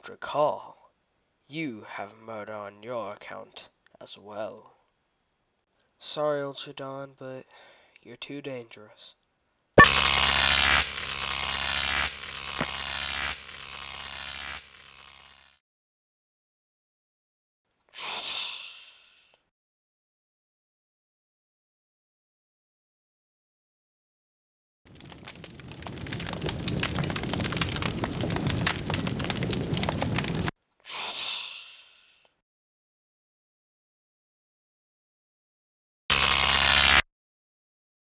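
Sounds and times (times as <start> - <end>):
electric buzzing static: 9.8 - 15.6, 36.1 - 37.0
rain patter: 24.9 - 30.5.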